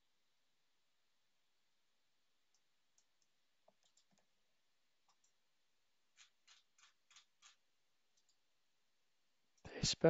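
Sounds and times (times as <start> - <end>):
computer mouse clicks: 2.5 - 4.3, 6.2 - 7.6.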